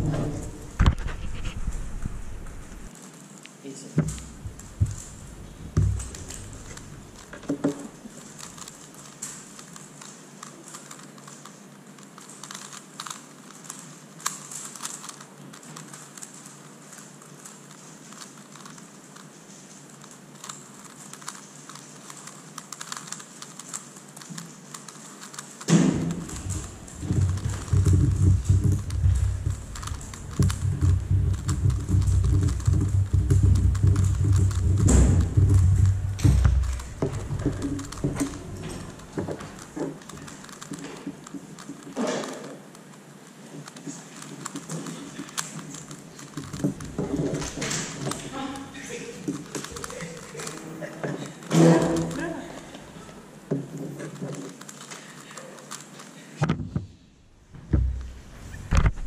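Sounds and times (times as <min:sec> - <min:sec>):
puzzle cube plastic clicking: 0:00.5 - 0:53.2, 0:54.0 - 0:56.2.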